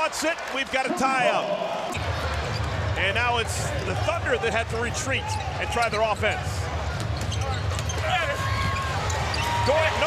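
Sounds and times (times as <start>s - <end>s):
commentator speaking: 0.0s - 1.7s
arena crowd noise: 0.0s - 10.0s.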